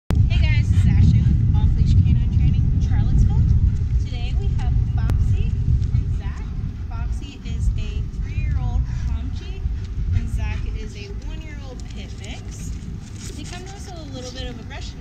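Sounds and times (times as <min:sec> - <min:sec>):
wind buffeting microphone: 0:00.1 - 0:15.0.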